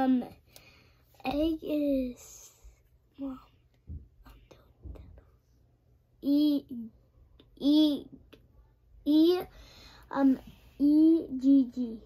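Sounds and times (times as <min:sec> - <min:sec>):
quiet whispering: 0:04.2 - 0:05.7.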